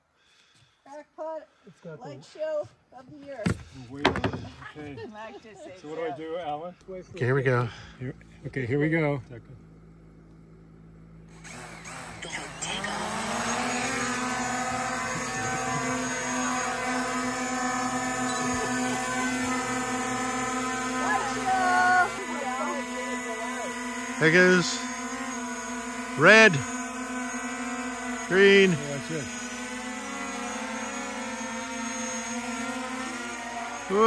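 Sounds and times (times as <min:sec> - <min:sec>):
drone propellers spinning: 0:09.6 - 0:34.0.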